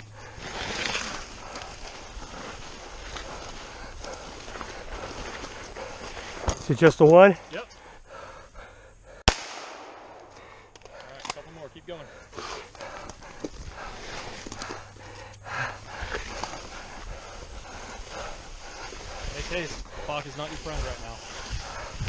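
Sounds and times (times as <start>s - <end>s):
breathing: 0.0s - 6.6s, 7.4s - 9.2s, 10.1s - 22.0s
rustling movement: 0.0s - 8.8s, 10.1s - 22.0s
gunshot: 9.3s - 10.3s.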